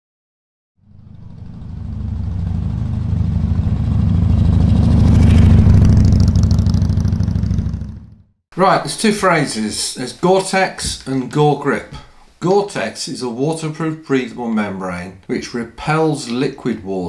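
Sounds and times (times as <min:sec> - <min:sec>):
motorcycle engine running: 0:00.8 - 0:08.4.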